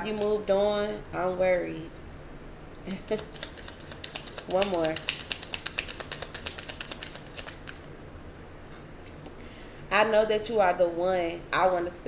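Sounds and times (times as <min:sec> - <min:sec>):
card deck shuffling: 0:00.0 - 0:00.5, 0:03.1 - 0:07.9.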